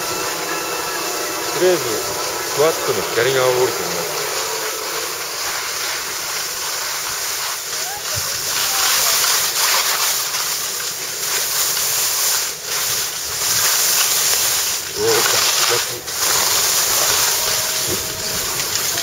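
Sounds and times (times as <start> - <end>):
skis sliding over slushy snow: 0.0 - 19.0.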